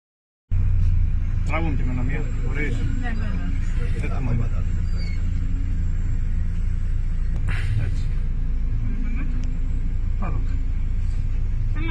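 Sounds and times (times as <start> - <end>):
low engine rumble: 0.5 - 11.9.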